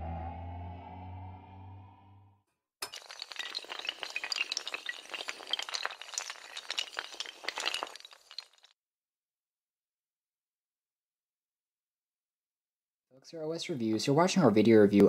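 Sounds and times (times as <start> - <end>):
low held music chord: 0.0 - 2.3
dominoes toppling: 2.8 - 8.7.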